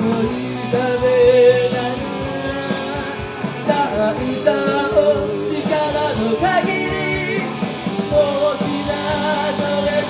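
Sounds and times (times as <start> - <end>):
electric guitar: 0.0 - 10.0
steady beat: 0.0 - 10.0
woman singing into a microphone: 0.0 - 10.0.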